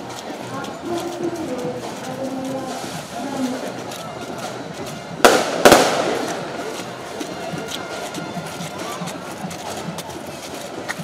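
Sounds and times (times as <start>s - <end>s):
firecracker bangs: 5.2s - 6.8s.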